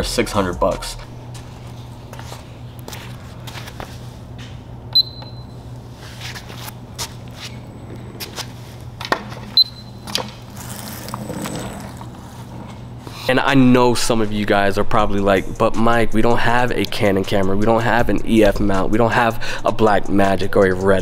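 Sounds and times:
scooter low hum: 1.4s - 13.3s
short high beeps: 5.0s - 5.6s.

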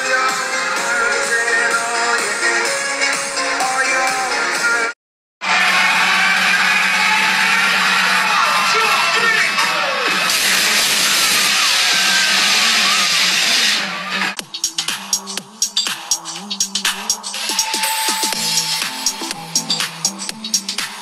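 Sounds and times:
loud live dance music: 0.0s - 21.0s
crowd noise: 5.4s - 21.0s.

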